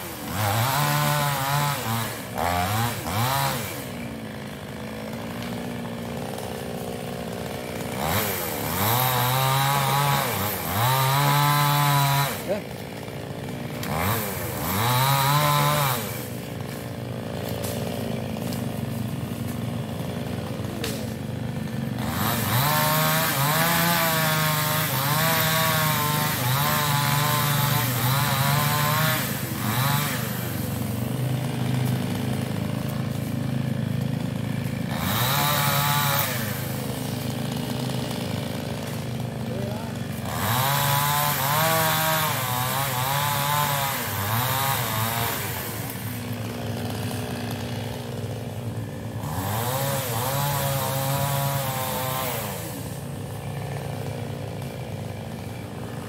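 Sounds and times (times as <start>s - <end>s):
chainsaw cutting logs: 0.0s - 56.0s.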